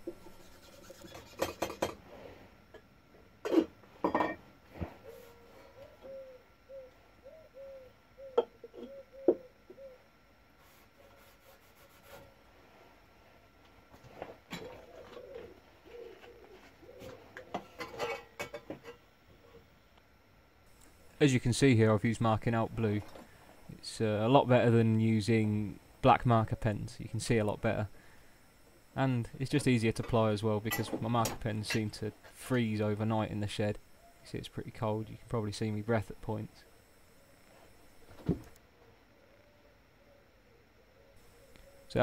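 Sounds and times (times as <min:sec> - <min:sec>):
rag rubbing on steel: 0:00.0 - 0:01.8.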